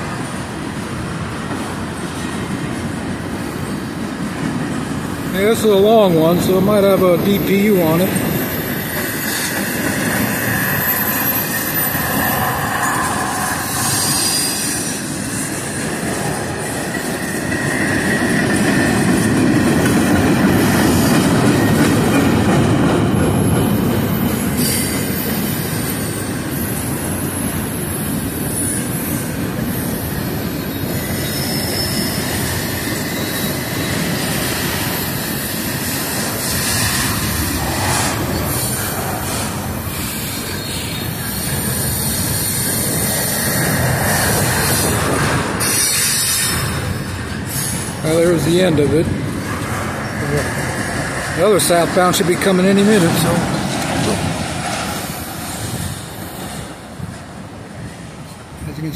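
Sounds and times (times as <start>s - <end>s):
rail clicks: 0.0s - 27.6s, 32.1s - 58.6s
train wheels rumbling on rail: 0.0s - 58.9s
wheel squeal: 8.4s - 14.9s, 30.7s - 34.0s.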